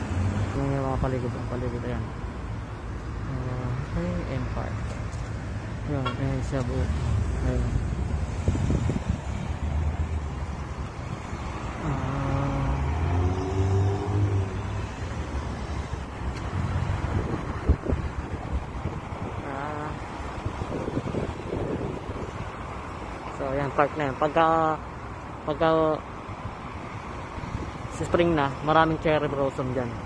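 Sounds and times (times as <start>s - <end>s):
cars passing: 0.0s - 30.0s
wind buffeting microphone: 6.8s - 11.0s, 12.5s - 22.7s.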